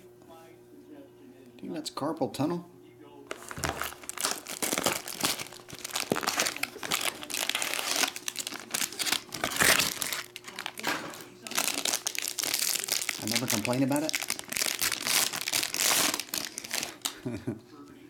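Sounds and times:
foil pack crinkling: 3.3s - 17.4s.

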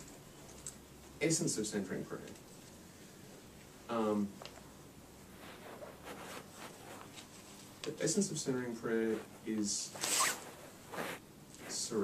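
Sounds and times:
man speaking: 3.9s - 4.4s, 7.9s - 10.0s, 11.6s - 12.0s
breathy rustling noise: 10.2s - 12.0s.

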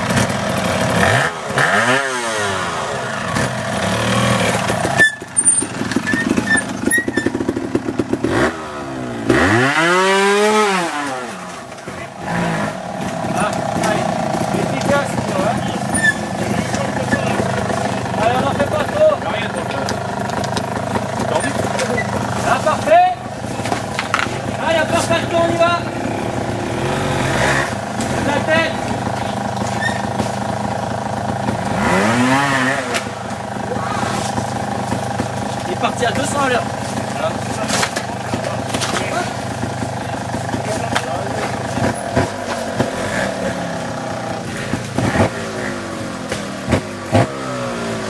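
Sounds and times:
motorcycle engine revving: 0.0s - 48.0s.

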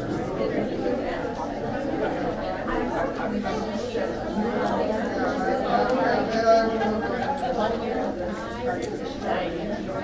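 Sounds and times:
chatter of overlapping voices: 0.0s - 10.0s.

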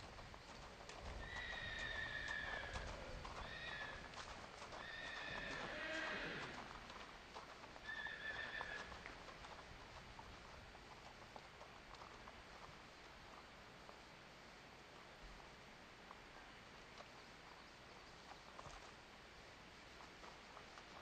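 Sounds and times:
hooves on gravel: 0.0s - 21.0s.

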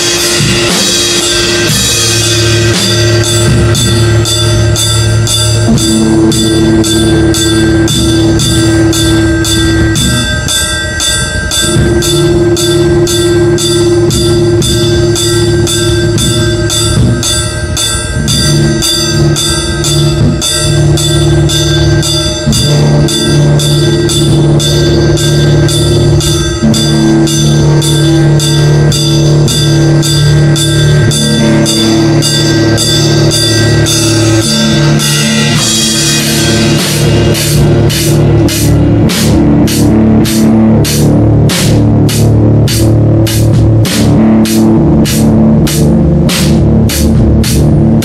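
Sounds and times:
distorted electric guitar chords: 0.0s - 48.0s
drums: 0.0s - 48.0s
metallic percussion hits: 0.0s - 48.0s.

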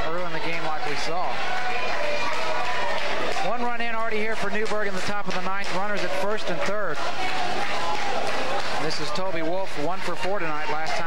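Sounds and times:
steady background noise: 0.0s - 11.0s
man speaking: 3.5s - 7.0s, 8.8s - 11.0s.

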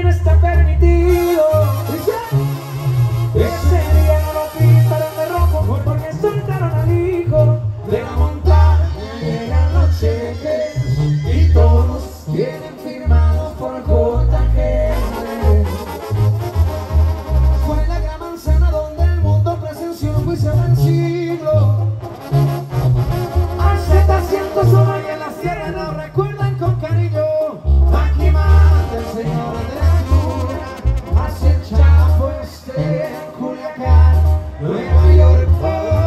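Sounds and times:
deep bouncing bass line: 0.0s - 32.6s, 33.8s - 36.0s
brass band playing: 0.0s - 36.0s.

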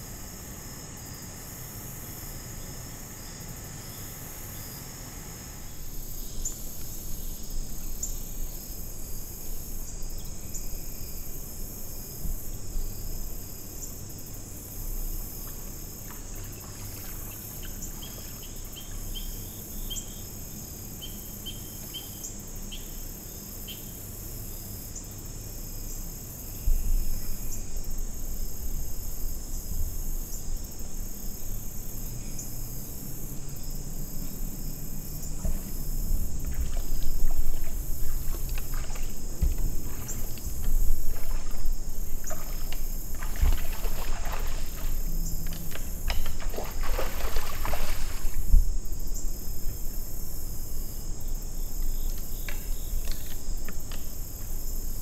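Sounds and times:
crickets and insects chirping: 0.0s - 55.0s
animal splashing through water: 16.0s - 19.4s, 35.3s - 48.6s.

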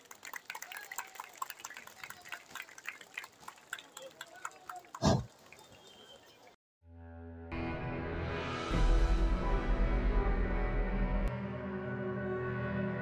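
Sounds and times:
audience clapping: 0.0s - 6.5s
crowd noise: 0.0s - 6.6s.

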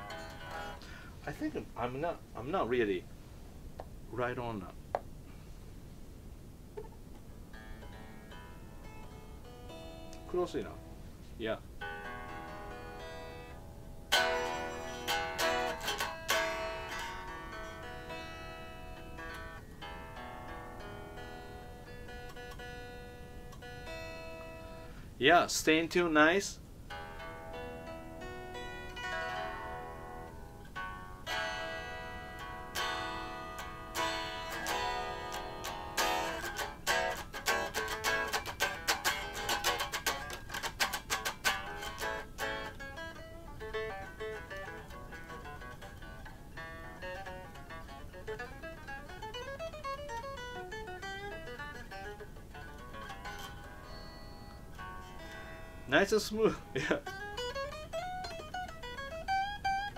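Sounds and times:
electric guitar playing: 0.0s - 1.1s, 6.8s - 11.0s, 11.8s - 25.1s, 26.9s - 59.9s.

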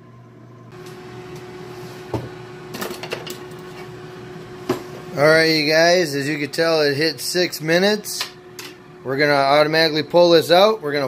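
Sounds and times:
air fryer fan humming: 0.0s - 11.0s.

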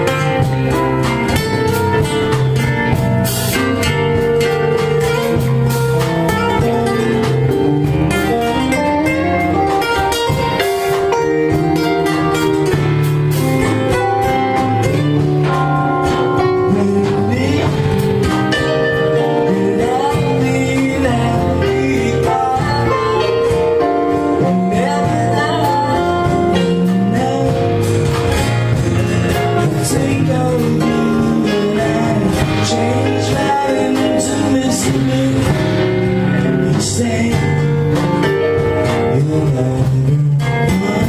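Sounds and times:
low bass notes: 0.0s - 41.0s
picked guitar melody: 0.0s - 41.0s
strummed guitar chords: 0.0s - 41.0s
man singing: 14.6s - 41.0s.

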